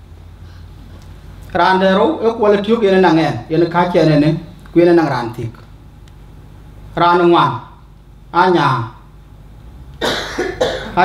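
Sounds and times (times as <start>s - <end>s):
man coughing into microphone: 10.0s - 11.0s.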